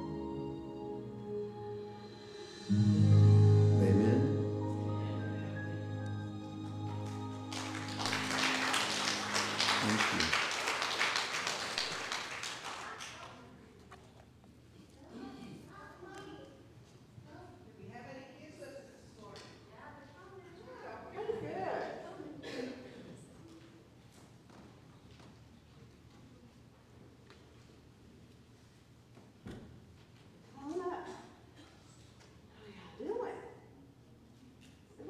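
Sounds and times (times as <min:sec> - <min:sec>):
low music notes: 0:00.0 - 0:10.4
congregation applauding: 0:03.8 - 0:13.5.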